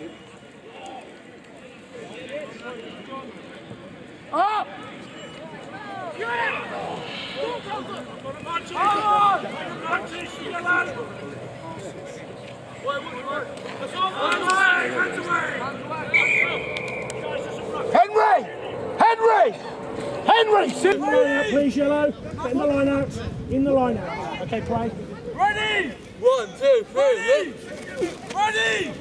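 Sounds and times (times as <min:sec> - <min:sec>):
players and spectators shouting: 0:04.3 - 0:22.6, 0:25.1 - 0:27.6, 0:28.2 - 0:29.0
referee's whistle blast: 0:16.1 - 0:17.5.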